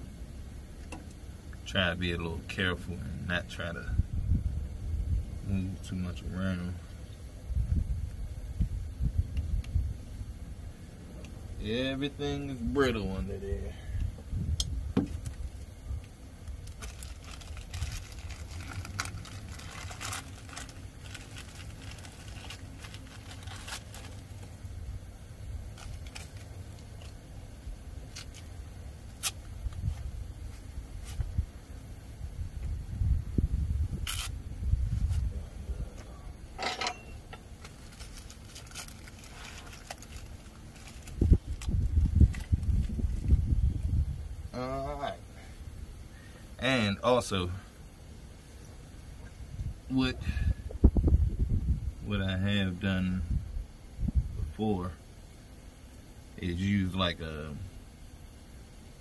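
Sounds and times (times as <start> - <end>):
gloved hands rustling: 15.0 - 24.7, 25.6 - 27.3, 28.0 - 31.4, 37.4 - 43.5.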